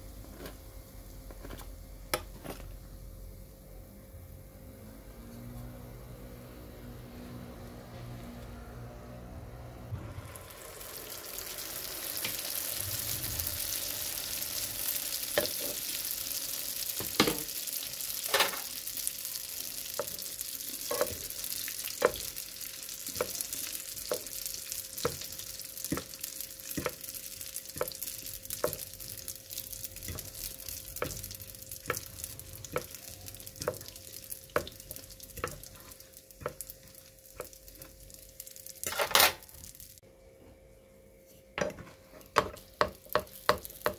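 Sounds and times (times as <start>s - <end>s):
oil sizzling in frying pan: 10.0s - 40.0s, 41.8s - 43.9s.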